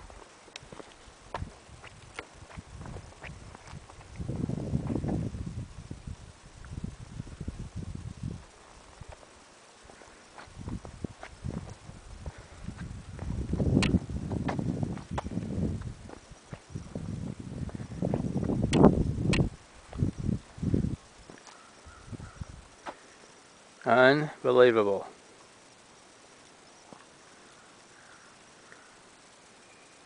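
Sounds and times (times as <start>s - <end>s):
footsteps on bare rock: 0.0s - 5.3s, 9.0s - 21.6s
wind buffeting microphone: 0.0s - 9.2s, 10.5s - 21.3s, 21.9s - 22.8s
sharp clicks: 13.8s - 14.0s, 18.7s - 19.5s.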